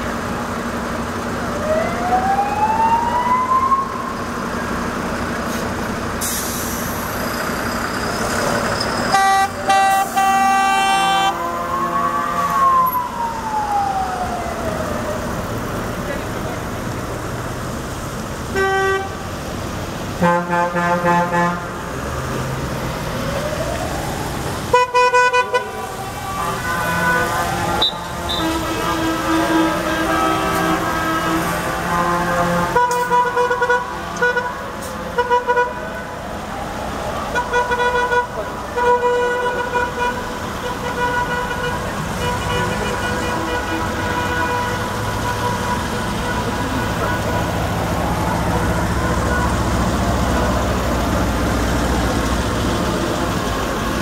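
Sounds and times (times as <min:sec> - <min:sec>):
cars and trucks driving past: 0:00.0 - 0:54.0
vehicle horns honking: 0:09.1 - 0:12.7, 0:18.5 - 0:19.3, 0:20.2 - 0:21.8, 0:24.7 - 0:35.8, 0:37.4 - 0:47.6, 0:48.7 - 0:49.7.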